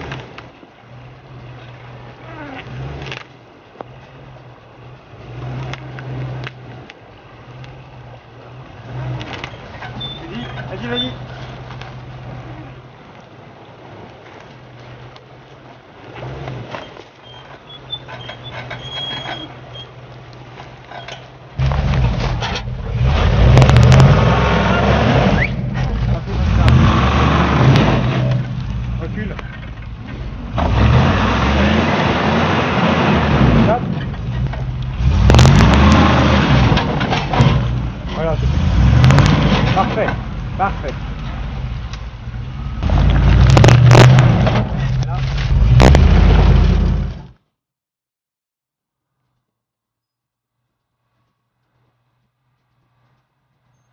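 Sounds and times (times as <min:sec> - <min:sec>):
tyres churning through mud: 0:00.0 - 0:47.4
car engine revving: 0:21.6 - 0:47.4.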